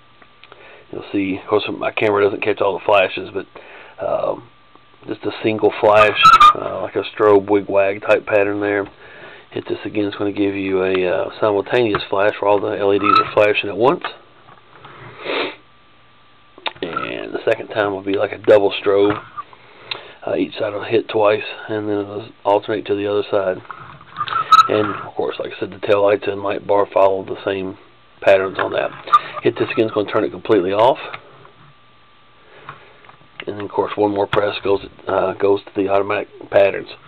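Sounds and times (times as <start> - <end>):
person sniffing: 15.0 - 15.6.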